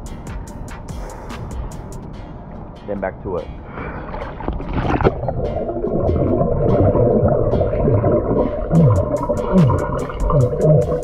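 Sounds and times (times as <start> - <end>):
regular ticking: 0.0 - 11.0
underwater air bubbles: 3.8 - 11.0
water splash: 4.0 - 11.0.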